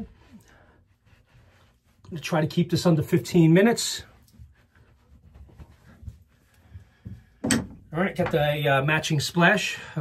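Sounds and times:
towel rubbing face: 0.0 - 7.4.

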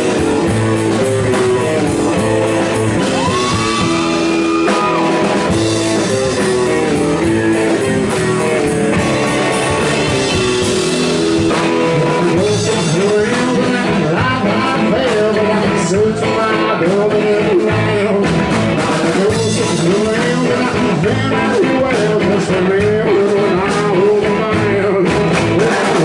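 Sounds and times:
electric guitar: 0.0 - 26.0
live band playing: 0.0 - 26.0
man singing: 0.0 - 26.0.

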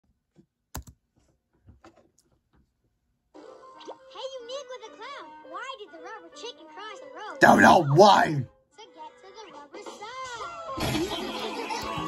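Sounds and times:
laptop clicks and tapping: 0.7 - 1.0.

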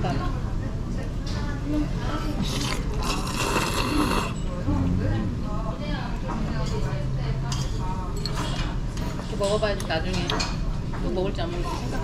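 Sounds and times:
person slurping noodles: 2.4 - 4.4.

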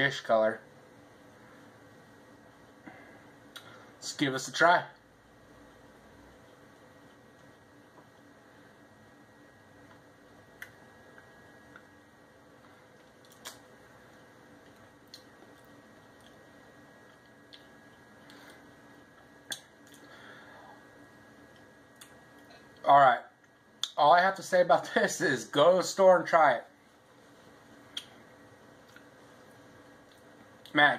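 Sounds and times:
faint steady hum: 0.0 - 30.9.

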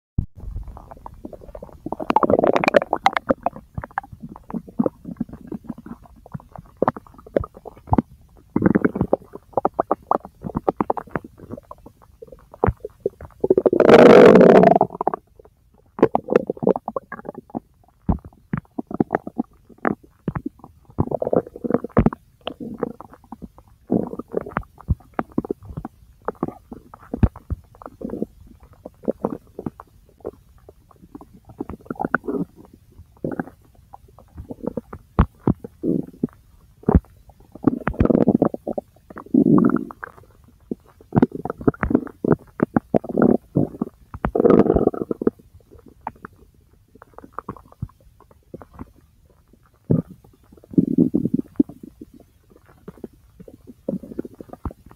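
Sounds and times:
bowel gurgling: 0.5 - 8.0, 8.6 - 15.2, 35.8 - 40.2, 40.8 - 45.3.

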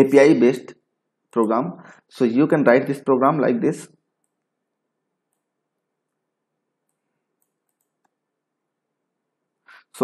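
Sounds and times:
faint computer mouse clicks: 6.8 - 8.2.

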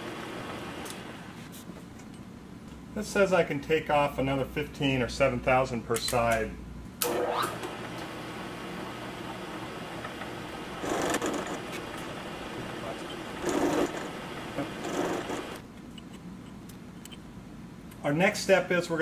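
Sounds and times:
milling machine cutting metal: 10.1 - 15.6.

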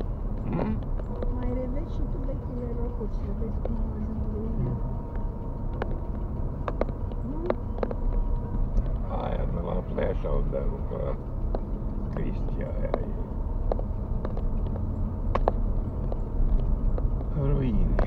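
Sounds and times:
engine and road rumble: 0.0 - 18.0.

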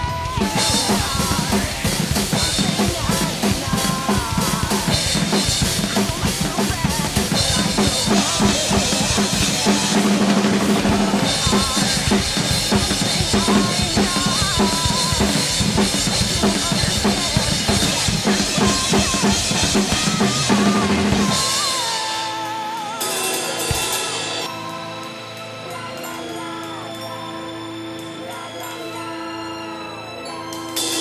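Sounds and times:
acoustic drum kit played hard: 0.0 - 24.7
recorded song playing: 0.0 - 31.0.

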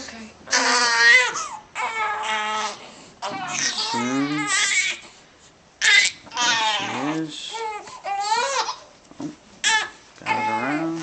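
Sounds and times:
infant crying: 0.5 - 5.1, 5.8 - 8.9, 9.6 - 11.0.

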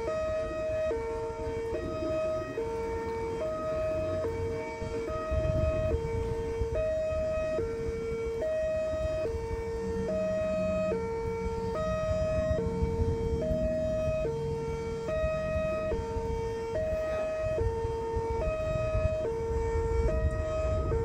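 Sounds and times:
hi-lo siren from horn loudspeaker: 0.0 - 21.0.

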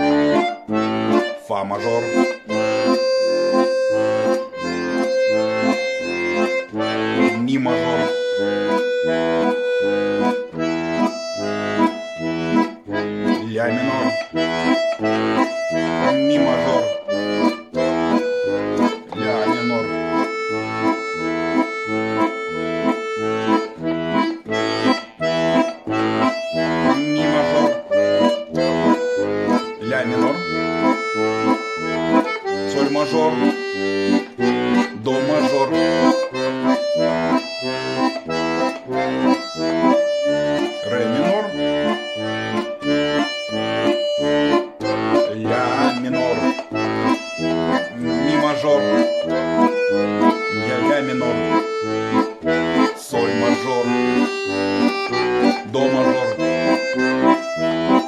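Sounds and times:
accordion bass and chords: 0.0 - 58.0.

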